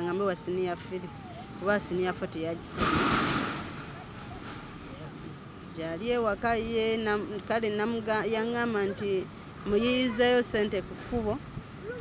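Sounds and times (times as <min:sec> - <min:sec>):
vehicle air hiss: 0:02.7 - 0:05.0.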